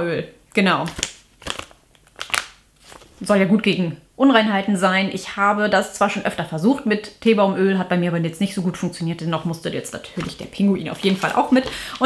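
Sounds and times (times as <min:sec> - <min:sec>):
sachet crinkling: 0:00.9 - 0:03.2, 0:10.0 - 0:12.0.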